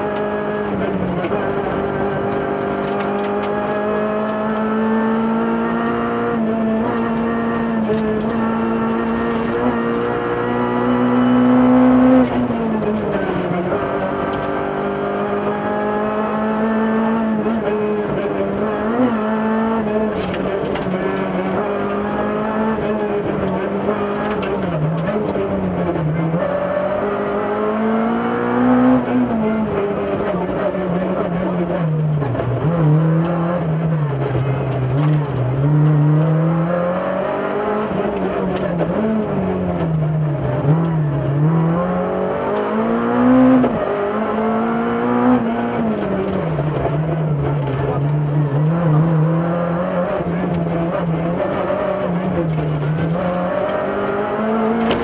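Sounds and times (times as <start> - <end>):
car engine at high revs: 0.0 - 55.0.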